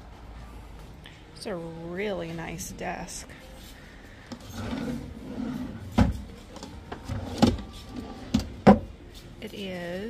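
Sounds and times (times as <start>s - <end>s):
wooden drawer rubbing: 4.4s - 8.9s
drawer knocking shut: 8.3s - 8.9s.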